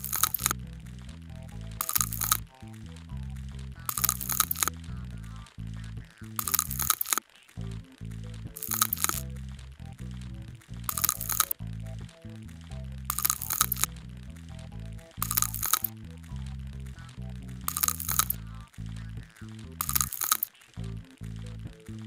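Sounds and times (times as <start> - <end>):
scalpel scraping crackle: 0.0 - 0.6, 1.7 - 5.6, 6.3 - 7.8, 8.5 - 20.8
background music low notes: 0.0 - 22.0.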